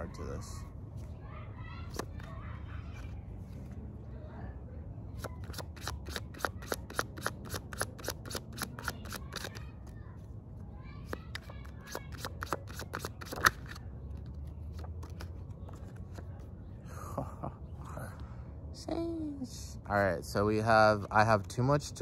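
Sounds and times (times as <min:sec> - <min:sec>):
cards being shuffled: 0:01.9 - 0:02.3, 0:05.2 - 0:10.3, 0:11.0 - 0:16.5.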